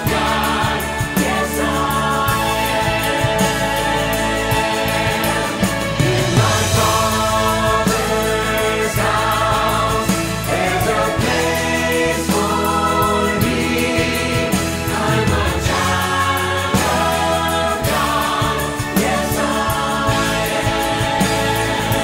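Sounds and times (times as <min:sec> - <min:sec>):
choir singing in harmony: 0:00.0 - 0:22.0
piano and band accompaniment: 0:00.0 - 0:22.0.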